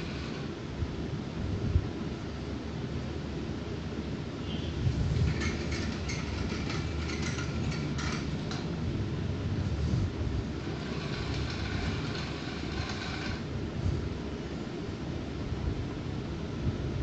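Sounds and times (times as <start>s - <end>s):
light clicks and rattles: 5.2s - 8.8s.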